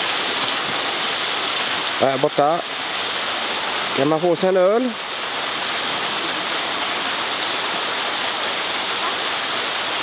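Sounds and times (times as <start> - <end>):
running water rushing: 0.0 - 10.0.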